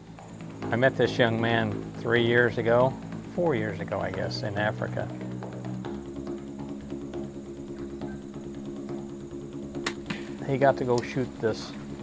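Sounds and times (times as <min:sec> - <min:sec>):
faint ticking percussion: 0:00.0 - 0:12.0
sustained low chord: 0:00.0 - 0:12.0
sharp click: 0:09.8 - 0:10.3.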